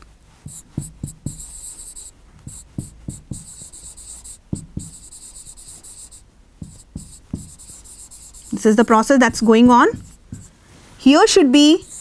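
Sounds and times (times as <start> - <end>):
chalk scratching on chalkboard: 0.4 - 10.6, 11.6 - 12.0.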